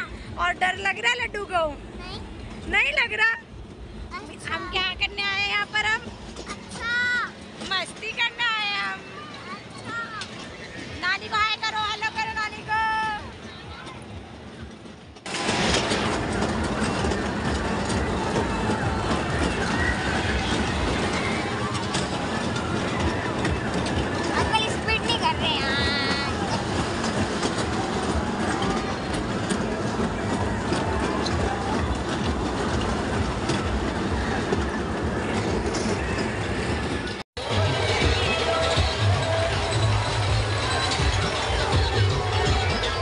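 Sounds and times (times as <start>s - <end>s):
fairground ride rattling rumble: 0.0s - 43.0s.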